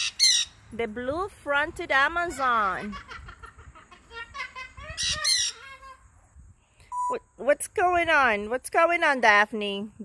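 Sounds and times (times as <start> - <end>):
harsh parrot call: 0.0 - 0.6, 5.0 - 5.9
parrots calling: 0.0 - 0.7, 4.9 - 6.0.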